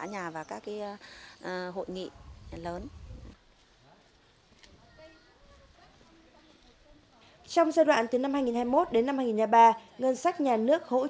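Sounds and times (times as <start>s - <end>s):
woman speaking: 0.0s - 2.9s, 6.1s - 11.0s
faint outdoor background sound: 0.0s - 11.0s.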